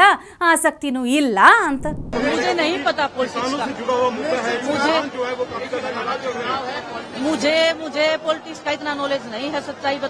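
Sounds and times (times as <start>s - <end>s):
woman answering reporters: 0.0s - 2.2s.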